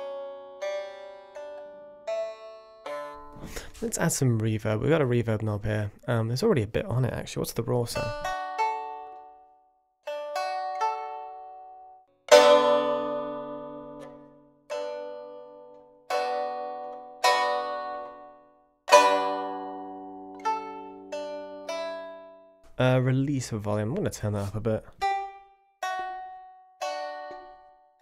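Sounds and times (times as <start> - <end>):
plucked lute notes and chords: 0.0 - 5.6, 6.9 - 28.0.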